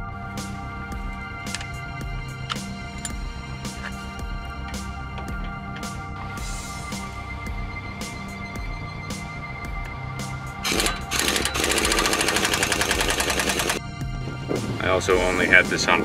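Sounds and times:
background music: 0.0 - 16.0
pneumatic impact wrench rattling: 10.6 - 13.8.

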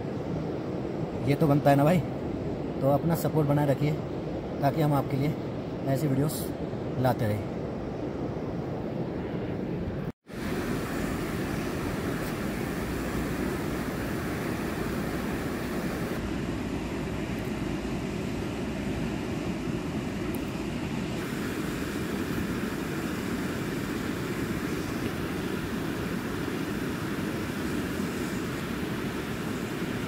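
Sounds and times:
fast-flowing river rushing: 10.3 - 16.2.

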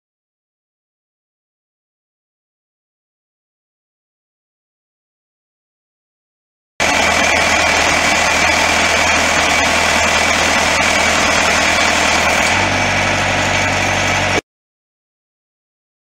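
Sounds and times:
diesel engine running: 6.8 - 14.4.

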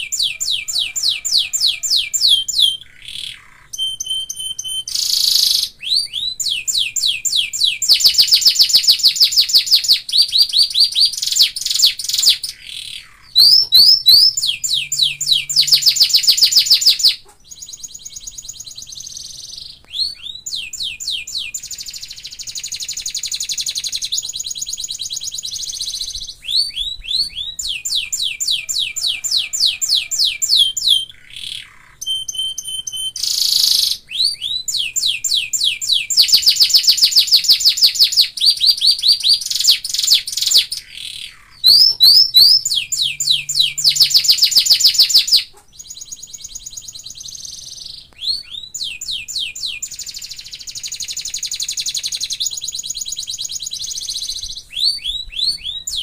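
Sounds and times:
canary singing: 0.0 - 56.0.

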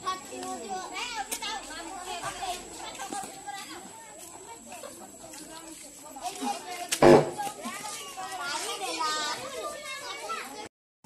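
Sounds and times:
children shouting and chattering: 0.0 - 10.7
sharp bang: 7.0 - 7.4.

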